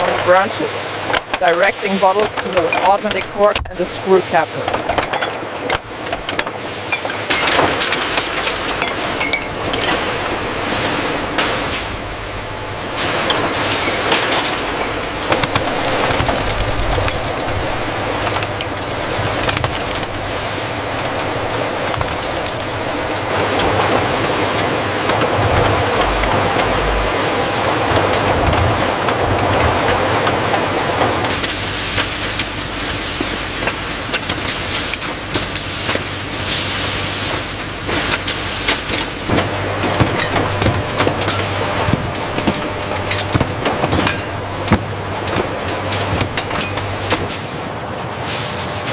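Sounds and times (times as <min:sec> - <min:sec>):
bottling machinery clattering: 0:00.0 - 0:31.4, 0:38.9 - 0:47.6.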